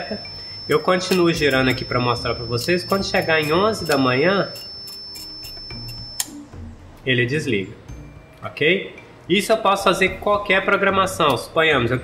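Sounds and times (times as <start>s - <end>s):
dial ticking: 0.0s - 6.4s
high continuity beep: 0.0s - 6.7s
timer switch click: 0.8s - 1.9s, 2.6s - 6.4s.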